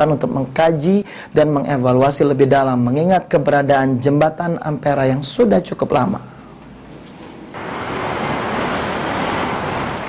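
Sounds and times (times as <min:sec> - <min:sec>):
motorcycles and cars passing: 0:07.6 - 0:10.0.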